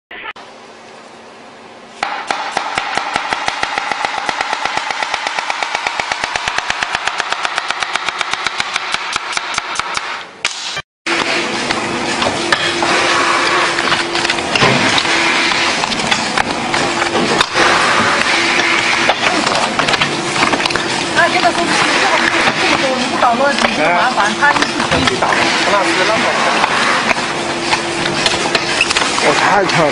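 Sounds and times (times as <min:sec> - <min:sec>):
steady hum: 0:00.1 - 0:29.9
voices: 0:21.1 - 0:27.0.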